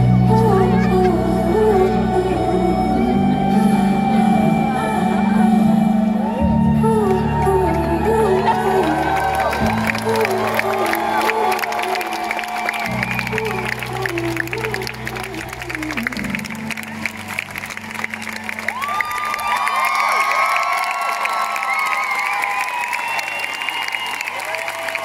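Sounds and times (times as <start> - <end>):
low keyboard chord: 0.0 - 11.8, 12.6 - 18.8
person singing melody: 0.0 - 19.4
crowd cheering and applauding: 4.4 - 25.0.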